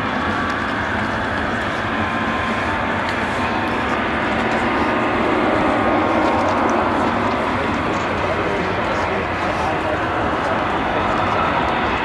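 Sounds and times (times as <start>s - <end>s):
faint turbine whine: 0.0s - 12.0s
jet airliner taxiing: 0.0s - 12.0s.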